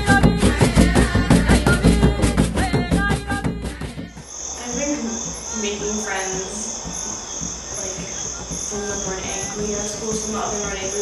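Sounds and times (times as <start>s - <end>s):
crickets chirring: 4.2s - 11.0s.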